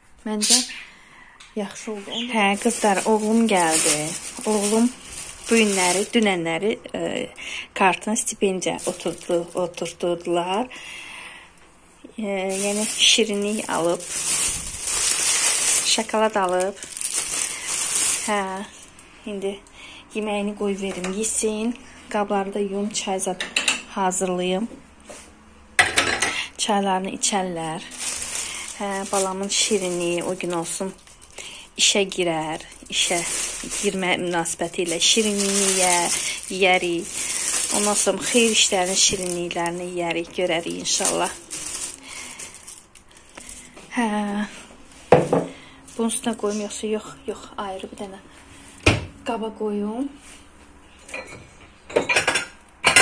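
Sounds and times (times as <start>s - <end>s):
foil-wrapped sweets rustling: 1.7s - 10.8s, 12.1s - 19.1s, 26.4s - 44.0s, 45.7s - 46.8s
plastic bag crinkling: 1.8s - 6.8s, 7.9s - 10.3s, 12.3s - 19.1s, 27.3s - 43.8s.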